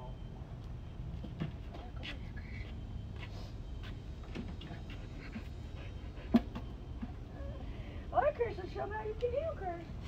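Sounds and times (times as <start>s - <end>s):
dog panting: 4.6s - 6.7s.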